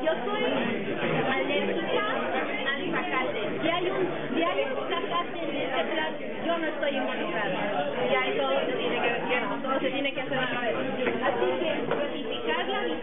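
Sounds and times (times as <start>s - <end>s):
overlapping chatter of people: 0.0s - 13.0s.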